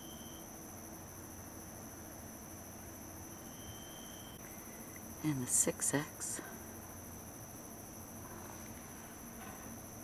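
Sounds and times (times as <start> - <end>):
night insects trilling: 0.0 - 10.0.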